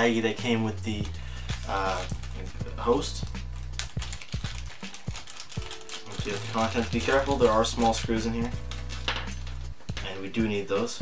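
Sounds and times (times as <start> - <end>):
background music: 0.0 - 11.0
plastic bag crinkling: 0.9 - 9.6.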